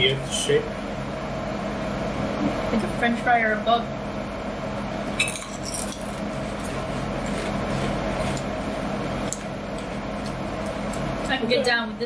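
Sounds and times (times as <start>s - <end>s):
crunchy snack chewing: 5.5s - 8.6s.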